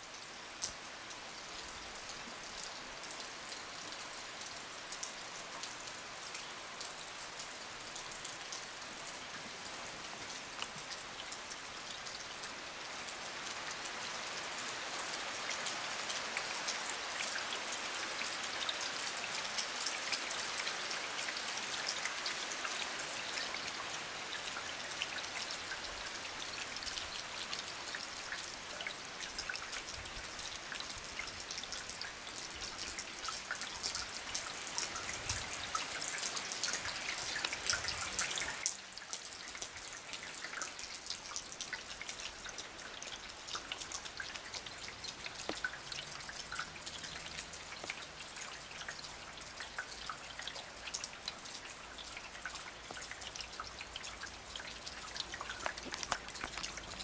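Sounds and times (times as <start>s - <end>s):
heavy rain falling: 54.3s - 57.0s.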